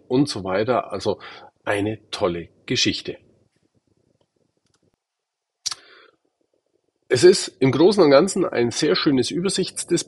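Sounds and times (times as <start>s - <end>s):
soft rustle: 3.1s - 5.0s.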